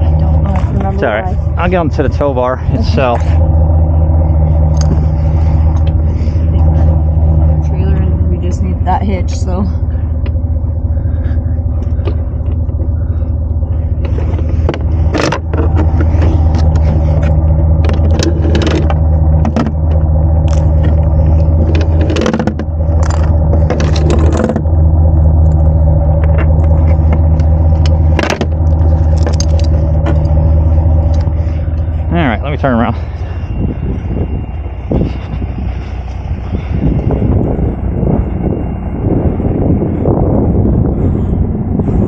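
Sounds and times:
truck engine idling: 0.0s - 42.0s.

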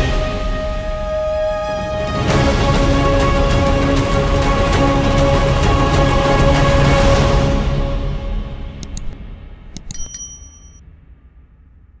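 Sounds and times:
button click: 8.8s - 10.8s
bright bell-like ding: 9.8s - 10.8s.

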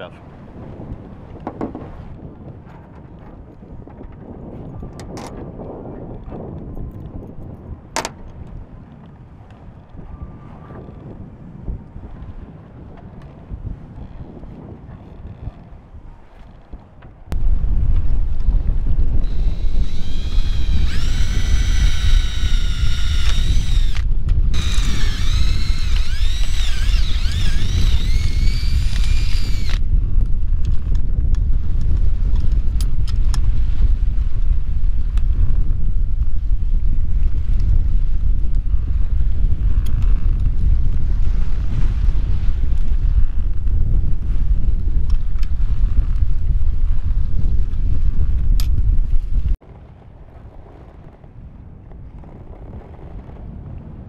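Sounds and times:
wind rumbling on microphone: 0.0s - 54.0s
cordless drill whining: 19.2s - 29.8s.

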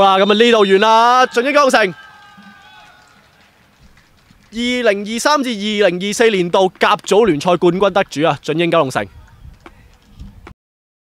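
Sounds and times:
open-air background noise: 0.0s - 10.5s.

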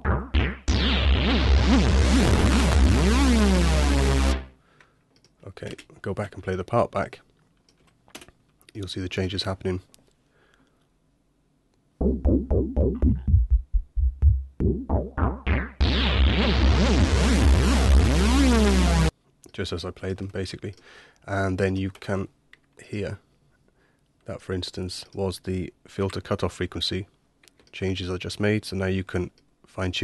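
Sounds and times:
synthesizer bass note with filter sweep: 0.0s - 4.5s, 12.0s - 19.1s.

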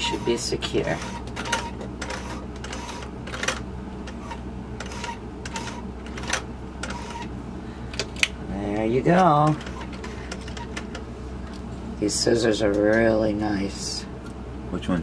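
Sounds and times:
sewing machine hum: 0.0s - 7.3s.

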